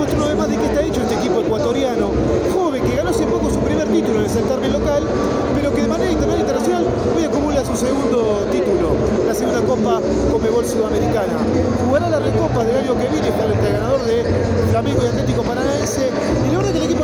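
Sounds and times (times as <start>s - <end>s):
babble of voices: 0.0s - 17.0s
man talking: 0.0s - 17.0s.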